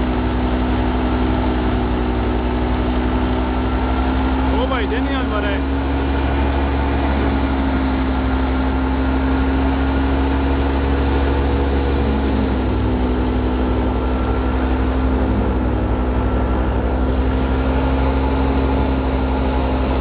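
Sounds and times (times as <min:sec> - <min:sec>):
engine droning: 0:00.0 - 0:20.0.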